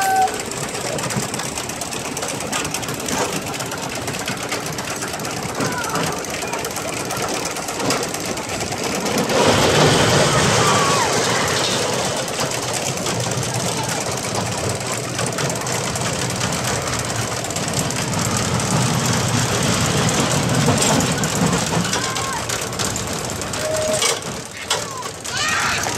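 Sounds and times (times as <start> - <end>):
roller coaster rumble and clatter: 0.0 - 25.9
people's voices: 5.2 - 7.4, 9.9 - 12.1, 12.8 - 16.7, 20.8 - 22.8, 23.5 - 25.9.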